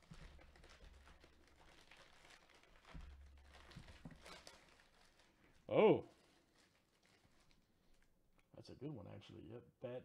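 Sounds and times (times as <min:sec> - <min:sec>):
plastic wrapping crinkling: 0:00.0 - 0:08.1.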